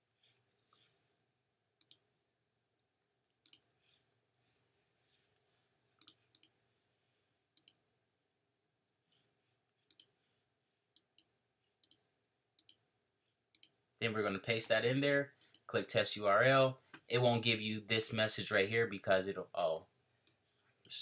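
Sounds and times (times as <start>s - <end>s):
computer mouse clicks: 1.8s - 2.0s, 3.4s - 3.7s, 6.0s - 6.6s, 7.6s - 7.8s, 9.9s - 10.1s, 12.6s - 12.8s, 13.5s - 13.8s.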